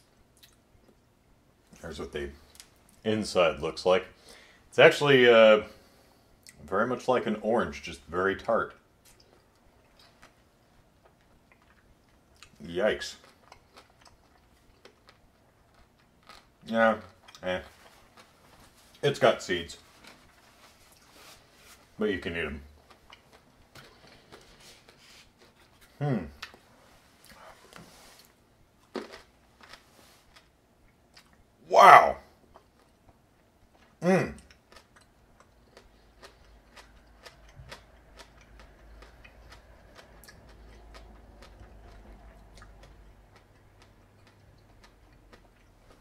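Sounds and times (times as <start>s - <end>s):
wet chewing clicks: 11.0s - 18.4s, 32.5s - 46.0s.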